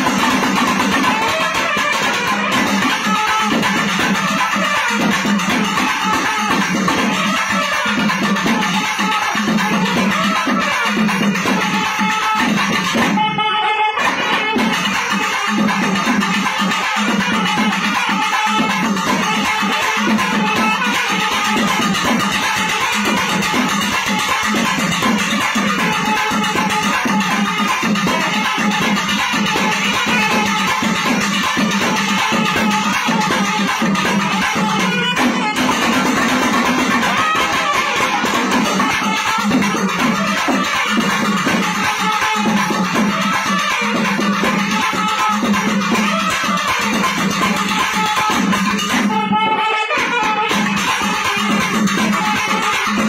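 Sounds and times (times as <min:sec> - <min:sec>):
thavil drums: 0:00.0 - 0:53.0
reed ensemble playing melody: 0:29.1 - 0:47.0.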